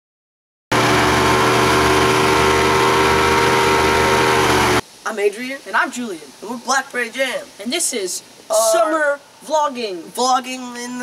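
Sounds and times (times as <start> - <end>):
motorboat engine running: 0.7 - 4.8.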